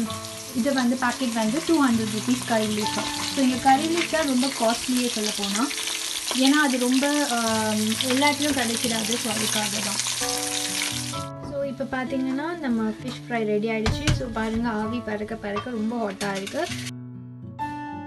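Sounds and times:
fish sizzling in hot oil: 0.0s - 11.3s, 16.4s - 16.9s.

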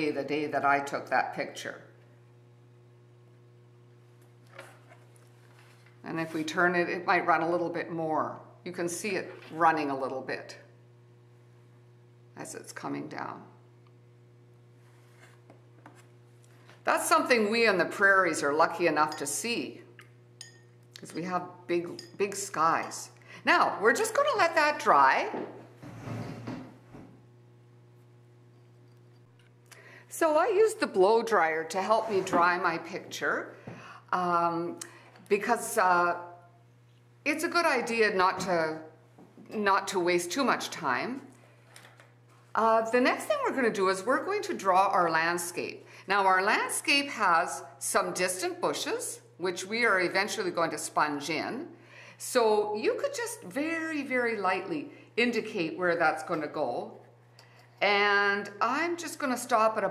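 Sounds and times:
low electrical hum: 0.0s - 59.9s.

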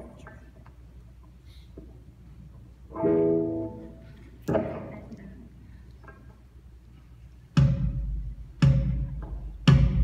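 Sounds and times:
guitar chords ringing: 2.9s - 4.0s.

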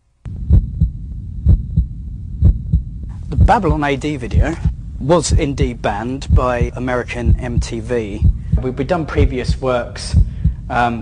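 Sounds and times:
low hum: 0.1s - 11.0s
heartbeat-like double thumps: 0.3s - 11.0s.

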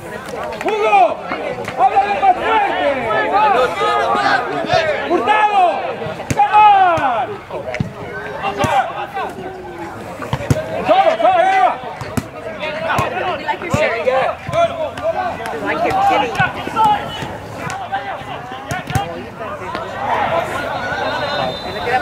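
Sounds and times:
players shouting: 0.0s - 22.0s.

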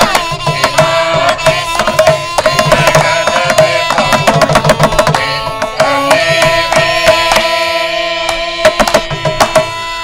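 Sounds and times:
mridangam drum strokes: 0.0s - 10.0s.

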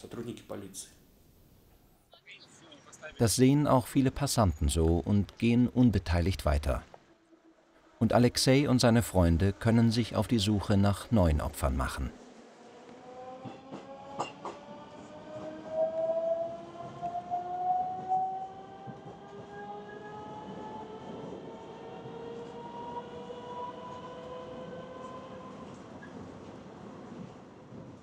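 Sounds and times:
rail noise: 1.7s - 28.0s
train traction motors whining: 7.2s - 25.8s.

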